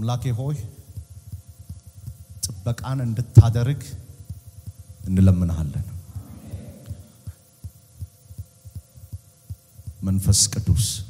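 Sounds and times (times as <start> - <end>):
man speaking into microphone: 0.0 - 0.8, 2.4 - 4.0, 5.0 - 6.0, 10.0 - 11.0
microphone hiss: 0.0 - 11.0
sound system hum: 0.0 - 11.0
soft low thumps: 0.9 - 3.6, 4.2 - 10.1.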